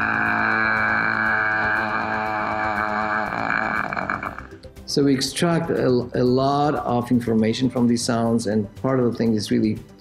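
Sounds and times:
man holding a sustained vowel: 0:00.0 - 0:04.5.

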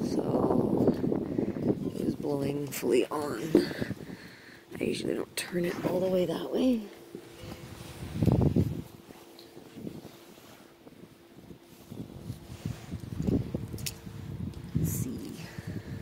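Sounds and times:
faint steady hum: 0:00.0 - 0:16.0
phone rustling against clothing: 0:07.0 - 0:14.1.

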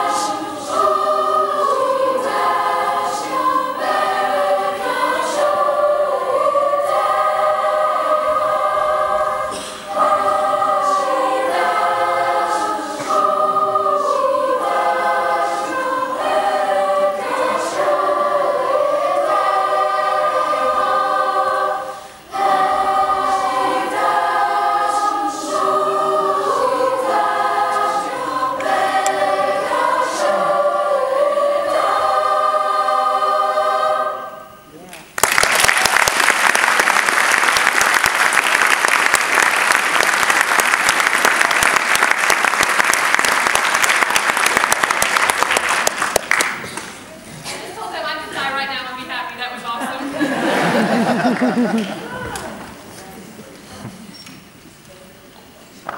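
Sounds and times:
choir singing in harmony: 0:00.0 - 0:34.7, 0:35.9 - 0:48.6, 0:49.2 - 0:54.1
audience applauding: 0:35.0 - 0:47.0.

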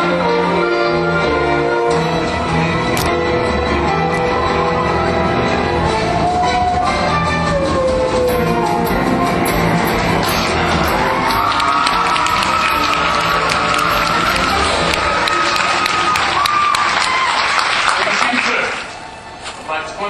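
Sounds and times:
orchestra playing: 0:00.0 - 0:17.2.

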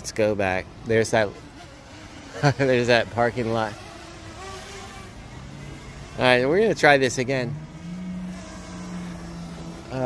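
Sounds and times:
drone propellers buzzing: 0:00.0 - 0:10.0.

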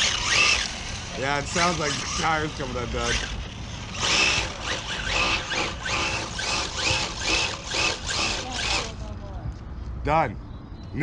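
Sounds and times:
rc car motor whining: 0:00.0 - 0:09.1.

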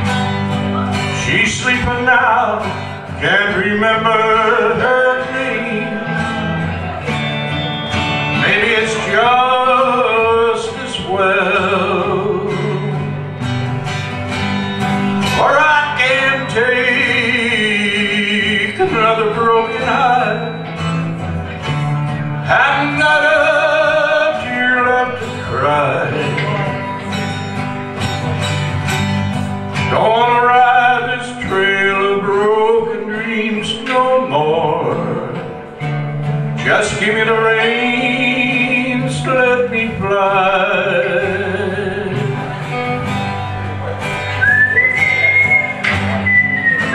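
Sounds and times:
country song on acoustic guitars: 0:00.0 - 0:46.9.

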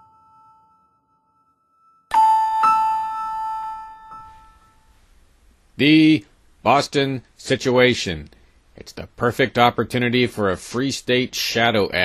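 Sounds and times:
two-tone chime: 0:00.0 - 0:04.9.

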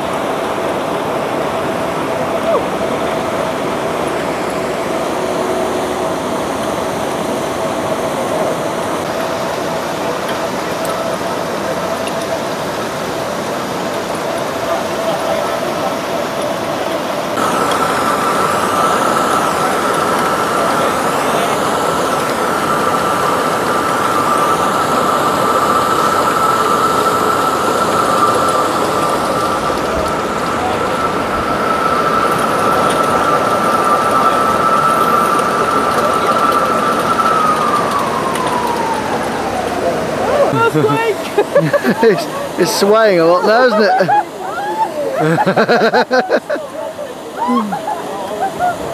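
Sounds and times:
roller coaster lift drive whine: 0:00.0 - 0:48.9.

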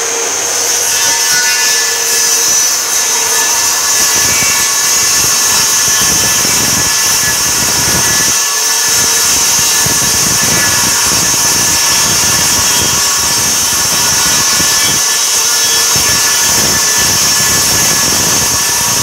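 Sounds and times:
circular saw cutting plywood: 0:00.0 - 0:19.0.

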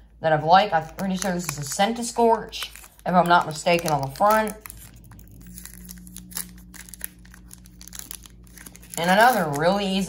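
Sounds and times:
foil wrapper tearing and crinkling: 0:00.8 - 0:10.0.

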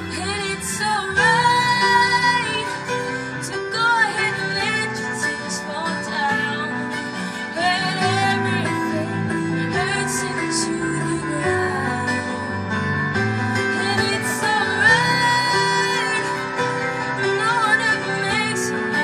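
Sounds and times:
woman singing into microphone: 0:00.0 - 0:19.0.

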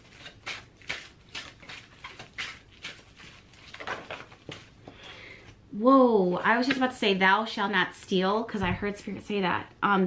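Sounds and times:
cards being shuffled: 0:00.1 - 0:04.8.

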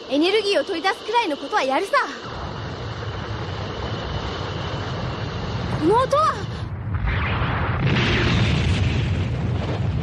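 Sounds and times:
low rumbling: 0:02.2 - 0:10.0.

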